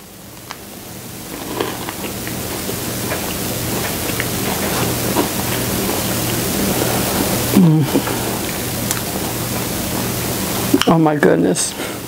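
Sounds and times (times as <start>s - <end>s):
steady hiss: 0.0s - 12.0s
person chewing crunchy cookie: 1.2s - 10.8s.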